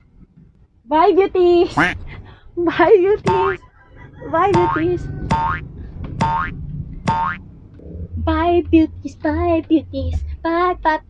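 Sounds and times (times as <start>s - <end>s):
low music bed: 4.4s - 11.0s
cartoon boings sweeping upward: 7.1s - 7.4s.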